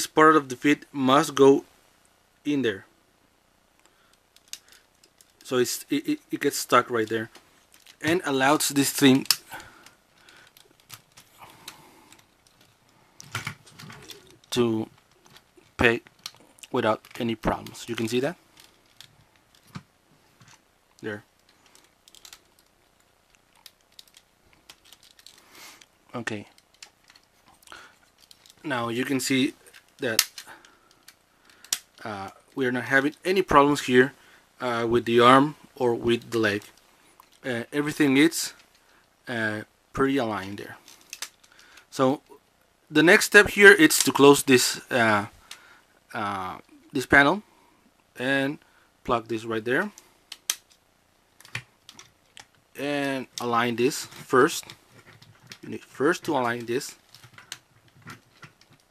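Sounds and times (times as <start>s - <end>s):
plastic parts clicking: 3.8s - 5.4s, 7.3s - 8.2s, 8.8s - 28.7s, 29.6s - 32.0s, 40.8s - 41.9s, 49.8s - 52.6s, 54.1s - 58.9s
plastic rubbing: 53.2s - 58.9s.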